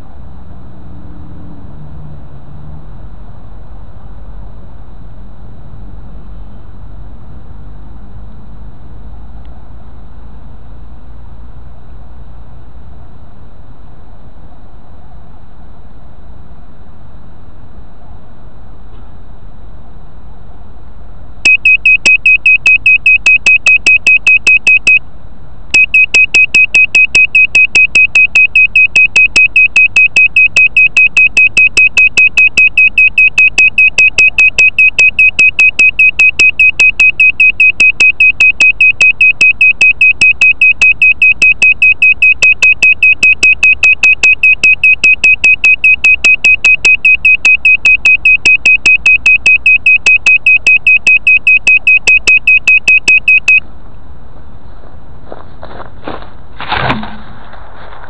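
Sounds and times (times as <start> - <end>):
high electronic beeper pulsing: 21.5 - 25.0, 25.8 - 53.6.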